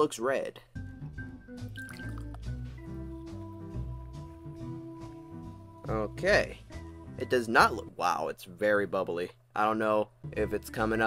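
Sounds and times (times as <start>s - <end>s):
background music with low beat: 0.8s - 8.0s
fizzy drink pouring into glass: 1.7s - 2.4s.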